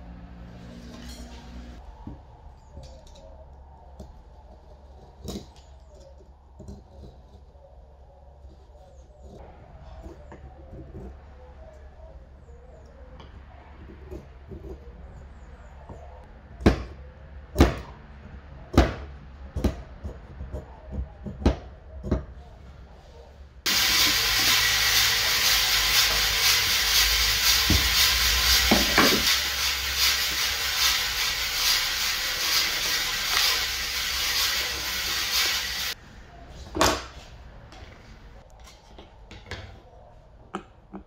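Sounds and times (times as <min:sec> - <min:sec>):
brush bristles sweeping: 0:23.7 - 0:36.0.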